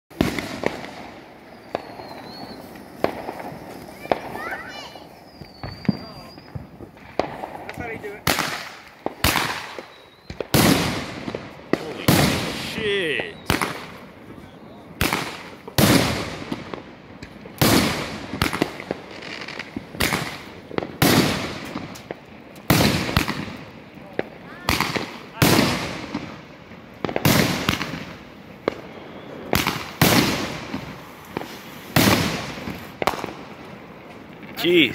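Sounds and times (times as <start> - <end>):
firework booms with echoing rumble: 0.1 - 34.9
firework crackles: 0.1 - 34.9.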